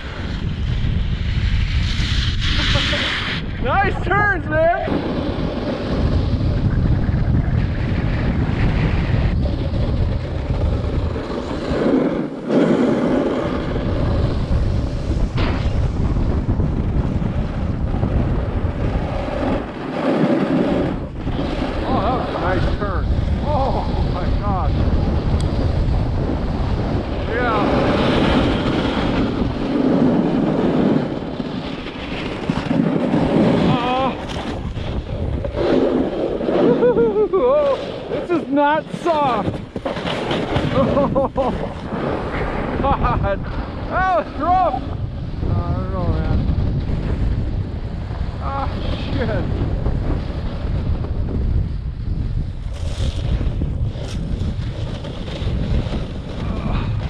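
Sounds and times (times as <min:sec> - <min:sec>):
snowboard edge scraping snow: 0:00.0 - 0:57.0
wind buffeting microphone: 0:00.0 - 0:57.0.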